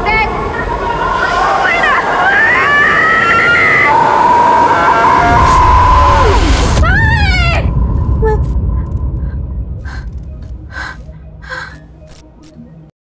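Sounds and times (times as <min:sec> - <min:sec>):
low rumble: 0:05.1 - 0:12.5
woman gasping: 0:09.3 - 0:11.9.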